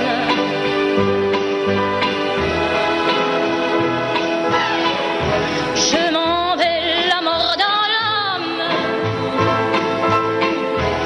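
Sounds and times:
woman singing with vibrato: 0.0 - 0.8, 5.7 - 9.7
pop accompaniment: 0.0 - 11.0.

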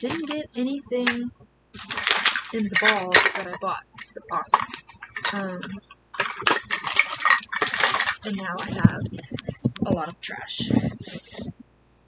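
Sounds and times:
packaging rustling: 0.0 - 0.4, 1.8 - 9.8, 10.6 - 11.6
plastic clacks and clicks: 0.0 - 0.4, 1.0 - 11.7.

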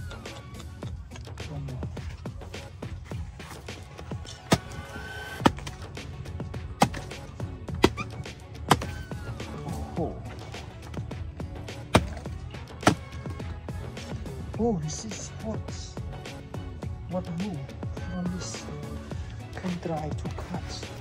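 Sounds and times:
background music: 0.0 - 21.0
hatchet chopping log: 3.4 - 9.2, 11.6 - 13.4.

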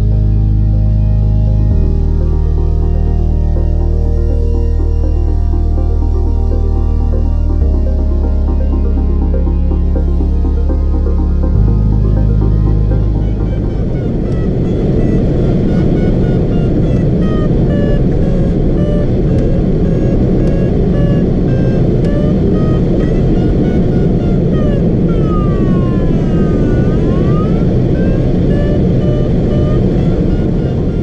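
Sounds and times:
variometer beeping: 0.0 - 31.0.

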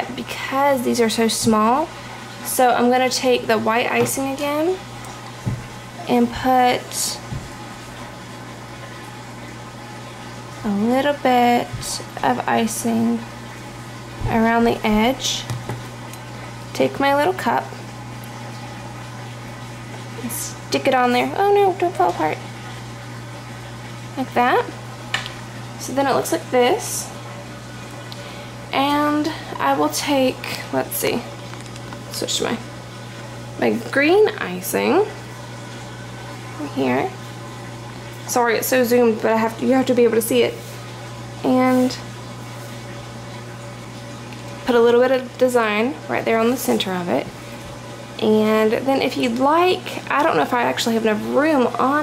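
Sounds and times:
steady low hum: 0.0 - 52.0.

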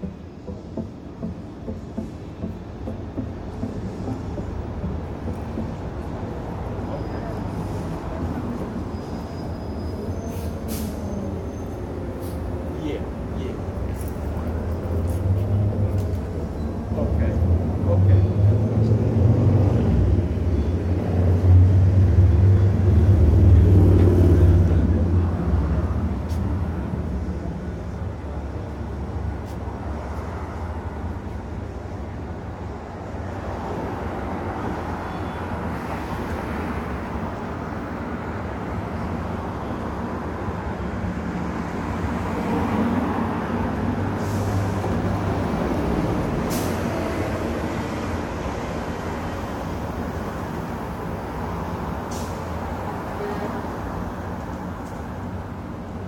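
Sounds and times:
bus engine rumbling: 0.0 - 56.0
cars passing: 0.0 - 56.0.

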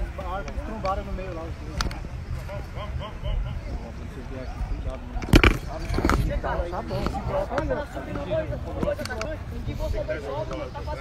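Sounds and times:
faint distant voices: 0.0 - 11.0
wind rumble on microphone: 0.0 - 11.0
camera handling bump: 5.2 - 6.3.

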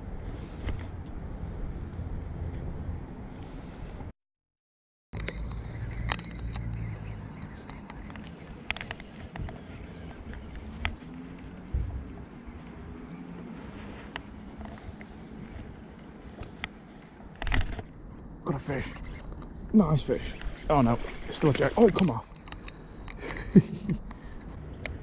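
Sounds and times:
low wind rumble: 0.0 - 4.1, 5.2 - 25.0
camera handling rustle: 16.3 - 17.9.

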